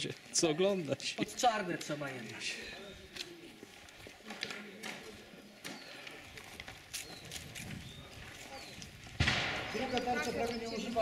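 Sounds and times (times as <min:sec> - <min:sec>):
faint background voices: 0:02.2 - 0:09.0.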